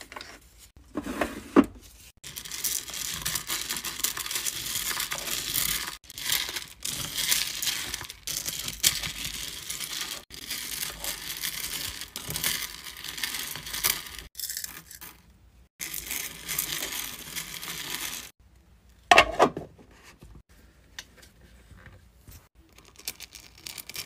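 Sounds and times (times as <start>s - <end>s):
wax beads rattling in metal pot: 2.2s - 15.2s, 15.8s - 18.3s, 22.6s - 24.0s.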